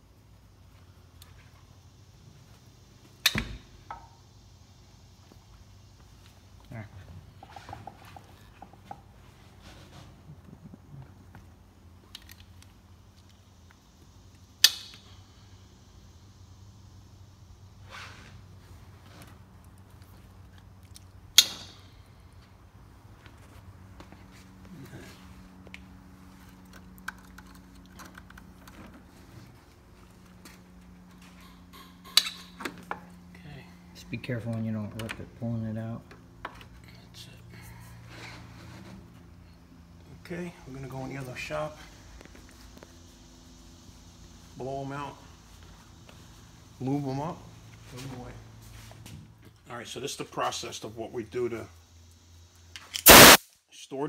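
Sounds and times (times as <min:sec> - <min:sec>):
steady low hum: 0:00.0 - 0:53.4.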